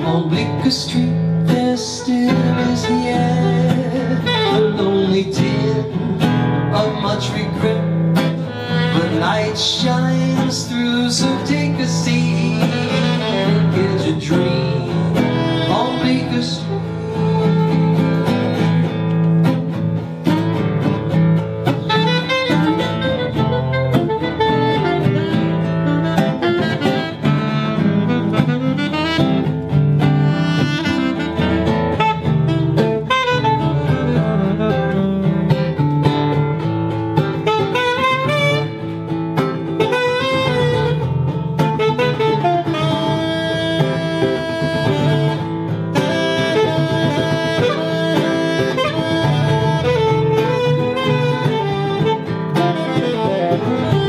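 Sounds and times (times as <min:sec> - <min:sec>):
saxophone solo: 0:00.0 - 0:54.0
strummed acoustic guitar: 0:00.0 - 0:54.0.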